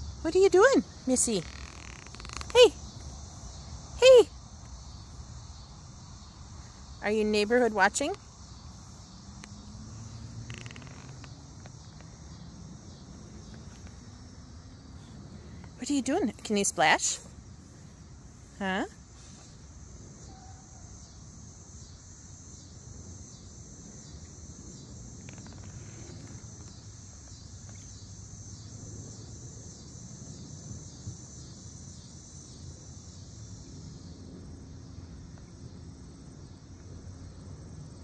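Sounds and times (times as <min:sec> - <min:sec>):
insects chirping: 0:00.0 - 0:38.0.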